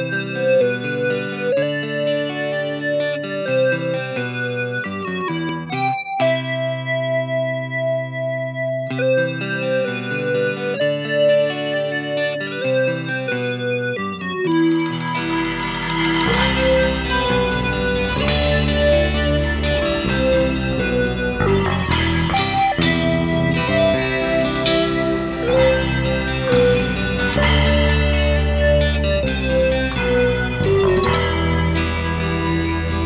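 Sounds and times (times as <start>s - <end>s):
bass guitar: 0.0s - 33.0s
keyboard chords: 0.0s - 33.0s
drums with cymbals: 14.5s - 33.0s.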